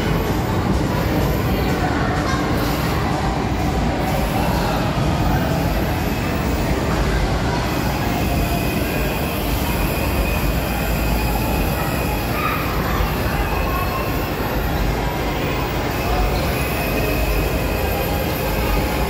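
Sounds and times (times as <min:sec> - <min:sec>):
ride machinery rumbling: 0:00.0 - 0:19.0.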